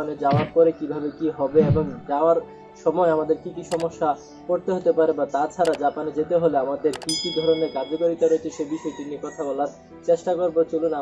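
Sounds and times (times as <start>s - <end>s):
mouse click: 3.7s - 3.9s, 5.6s - 5.8s, 7.0s - 7.6s
bright bell-like chime: 7.0s - 8.5s.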